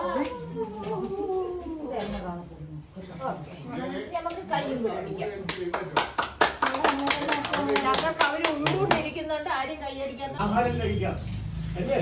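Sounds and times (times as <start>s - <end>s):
women talking: 0.0s - 5.2s, 6.6s - 10.4s
hands clapping: 5.4s - 9.1s.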